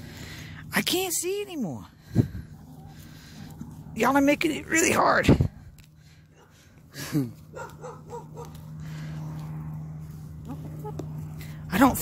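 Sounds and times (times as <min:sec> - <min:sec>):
hens foraging in soil: 0:00.0 - 0:12.0.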